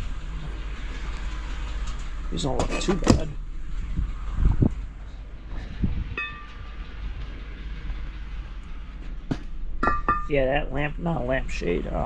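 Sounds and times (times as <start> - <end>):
steady low rumble: 0.0 - 12.0
short metallic ring: 6.2 - 6.7, 9.8 - 10.4
metal knock on concrete: 9.3 - 10.3.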